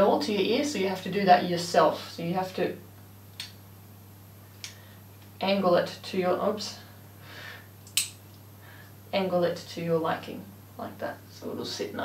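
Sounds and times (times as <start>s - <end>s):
low steady hum: 0.0s - 12.0s
sharp metal click: 7.9s - 8.2s.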